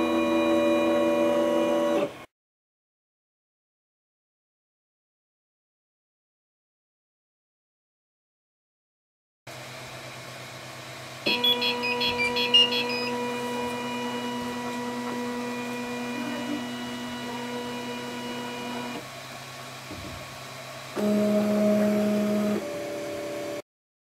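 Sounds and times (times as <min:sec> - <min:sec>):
stepper motor whine: 0:00.0 - 0:02.3, 0:09.5 - 0:19.1, 0:20.7 - 0:23.6
low fan hum: 0:09.5 - 0:23.6
stepper motors chirping: 0:11.3 - 0:17.5.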